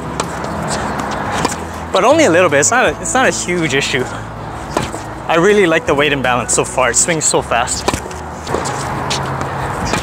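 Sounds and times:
tennis ball struck by racket: 0.0s - 1.7s, 4.7s - 5.1s, 7.8s - 10.0s
rushing background noise: 0.0s - 10.0s.

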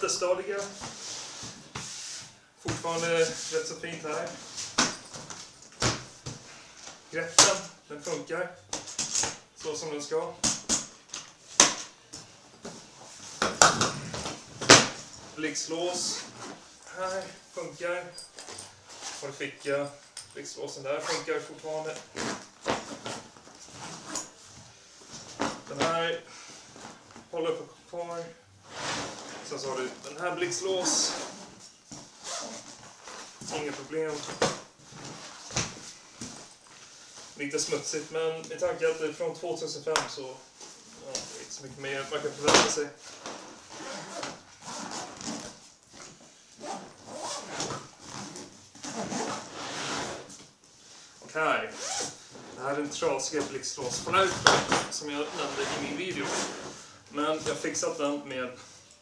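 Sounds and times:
bag rustling and scraping: 3.0s - 7.0s, 12.3s - 19.9s, 21.0s - 27.3s, 28.6s - 37.8s, 40.5s - 53.0s, 53.8s - 57.0s
fabric rustling: 28.6s - 39.1s.

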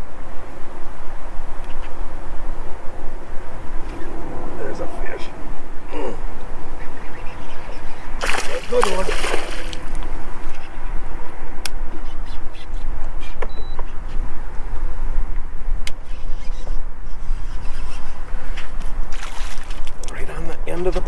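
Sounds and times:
wind buffeting microphone: 0.0s - 21.0s
water splash: 8.2s - 10.1s, 19.1s - 19.9s.

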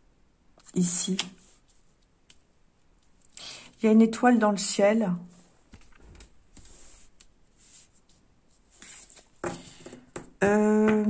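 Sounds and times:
cards tapping and clicking: 9.4s - 11.0s.

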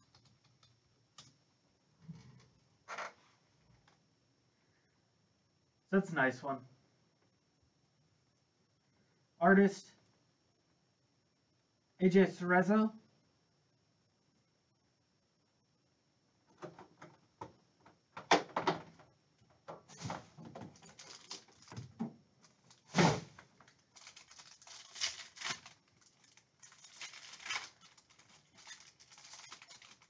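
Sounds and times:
foil wrapper crinkling and tearing: 20.8s - 21.8s, 22.4s - 30.0s.

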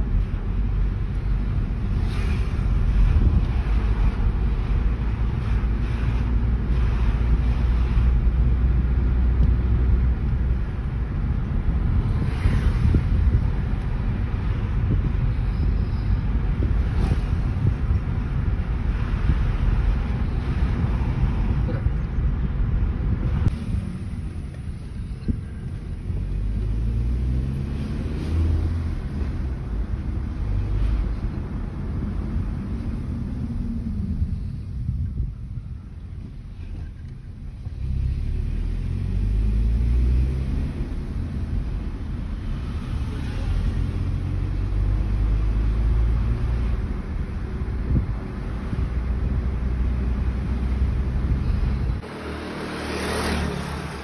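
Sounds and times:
road and wind noise: 0.0s - 54.0s
car engine accelerating: 23.4s - 34.8s, 36.9s - 54.0s.

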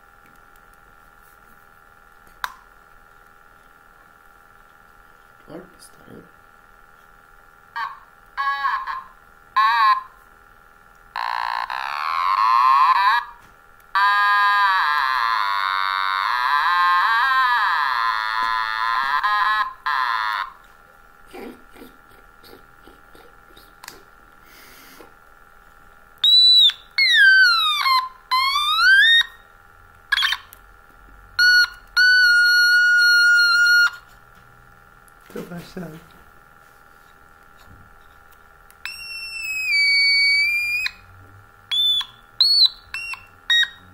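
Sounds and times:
electronic toy instrument notes: 7.8s - 10.2s, 11.1s - 20.6s, 26.2s - 29.4s, 30.1s - 30.5s, 31.4s - 34.1s, 38.8s - 41.1s, 41.7s - 43.9s.

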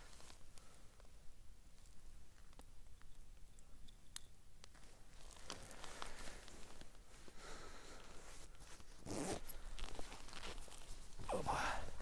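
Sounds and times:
clothing rustling: 4.8s - 7.4s, 8.0s - 12.0s
zipper being pulled: 9.0s - 9.6s.

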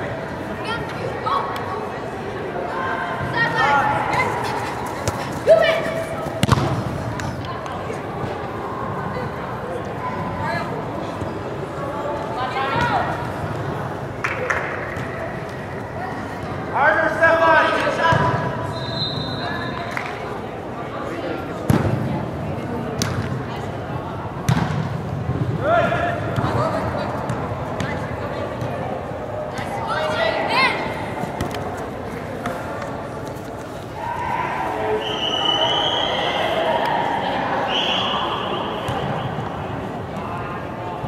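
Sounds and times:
reverberant sports hall noise: 0.0s - 41.0s
ball kicked thuds: 6.4s - 7.3s.

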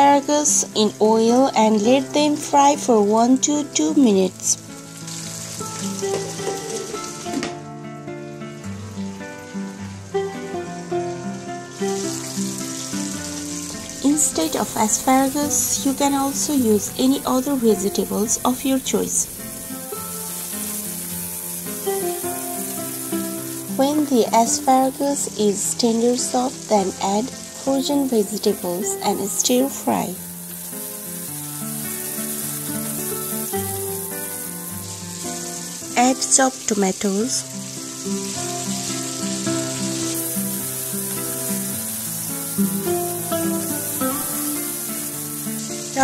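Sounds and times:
background music with held notes: 0.0s - 46.0s
food sizzling in a pan: 0.0s - 46.0s.

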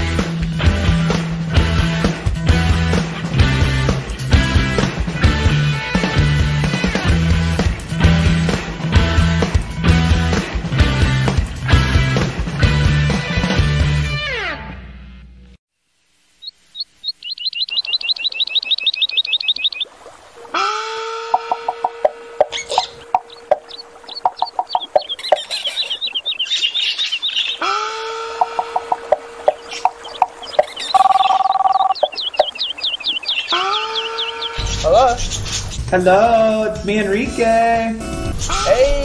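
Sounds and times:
birds chirping: 16.3s - 36.2s
low rising bird call: 16.4s - 34.9s.

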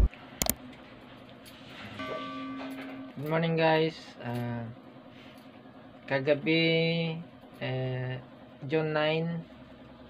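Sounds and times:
ringing bell chime: 1.9s - 3.3s.

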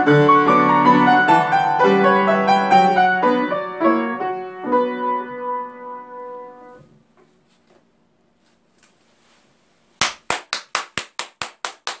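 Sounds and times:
hands clapping: 10.0s - 12.0s.

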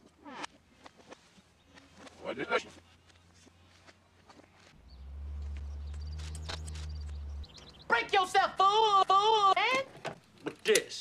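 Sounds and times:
deep low hum: 4.8s - 7.9s.

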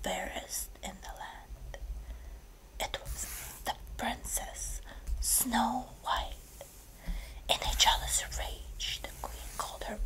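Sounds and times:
person whispering: 0.0s - 1.8s, 2.8s - 6.8s, 7.4s - 10.0s.

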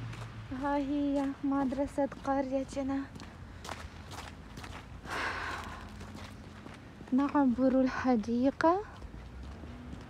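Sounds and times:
footsteps on snow: 0.0s - 8.2s.

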